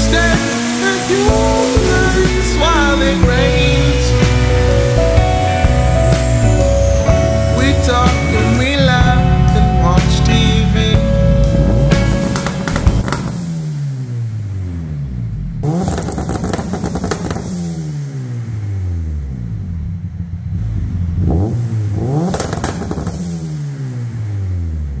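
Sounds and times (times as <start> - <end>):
car engine revving: 0.0 - 25.0
exhaust pops: 6.2 - 13.7, 15.6 - 17.8, 22.2 - 23.4.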